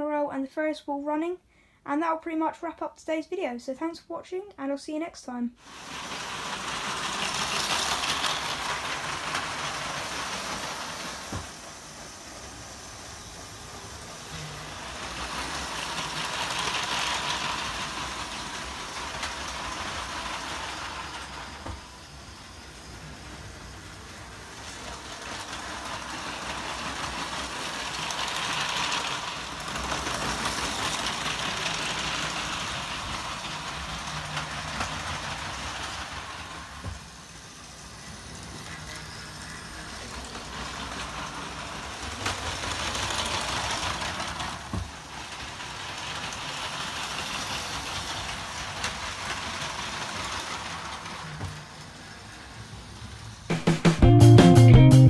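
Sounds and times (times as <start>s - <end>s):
toy train motor whirring: 5.6s - 53.5s
wheels rattling on plastic track: 5.6s - 53.8s.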